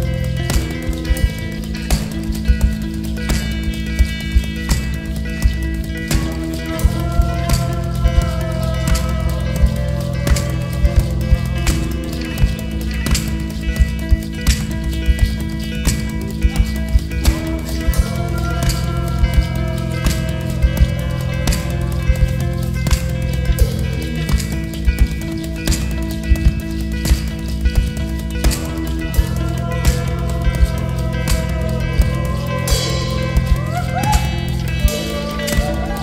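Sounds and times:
guitar: 0.0 - 36.0
hand percussion hits: 0.0 - 36.0
live band playing: 0.0 - 36.0.

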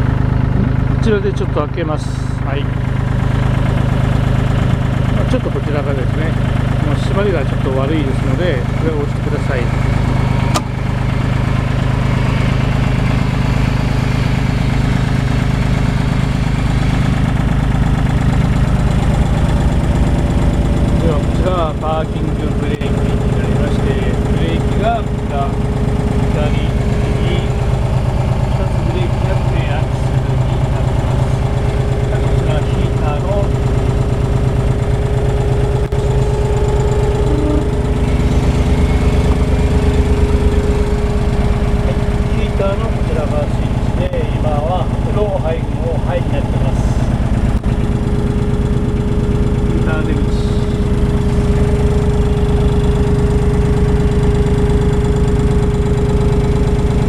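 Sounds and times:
diesel engine idling: 0.0 - 57.0
steady higher tone: 19.0 - 57.0.

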